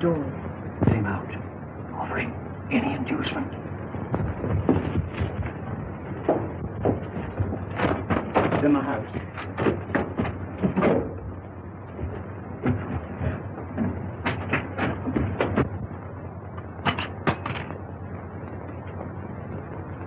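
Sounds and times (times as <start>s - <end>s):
film soundtrack hum and hiss: 0.0s - 20.0s.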